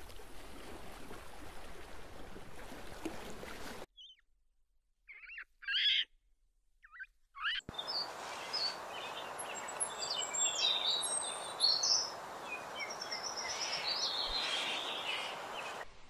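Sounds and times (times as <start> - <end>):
high bird chirps: 4.0 - 4.2, 5.1 - 6.1, 6.8 - 15.8
steady outdoor hiss: 7.7 - 16.0.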